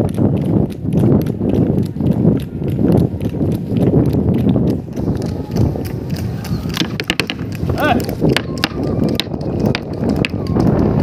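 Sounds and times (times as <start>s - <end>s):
hooves clattering on pavement: 0.0s - 11.0s.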